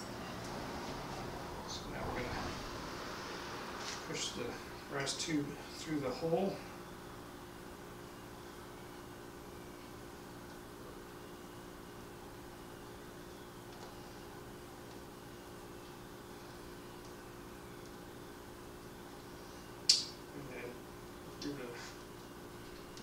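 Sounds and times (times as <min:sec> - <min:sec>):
faint hum: 0:00.0 - 0:23.0.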